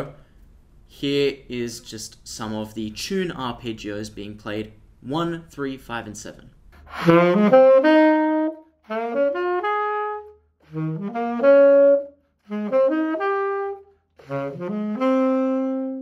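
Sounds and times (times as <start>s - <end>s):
tenor saxophone arpeggios: 6.9s - 16.0s.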